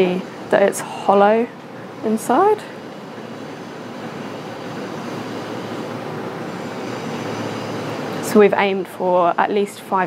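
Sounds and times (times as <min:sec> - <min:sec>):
steady mechanical rushing noise: 0:00.0 - 0:10.0.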